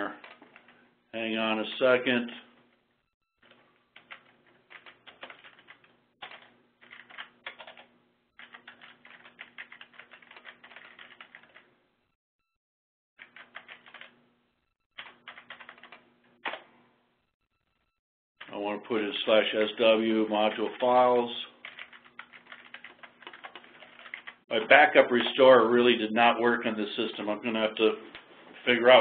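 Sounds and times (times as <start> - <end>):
typing on computer keyboard: 4.0 - 11.6, 13.2 - 14.1, 15.0 - 16.0, 21.6 - 24.4.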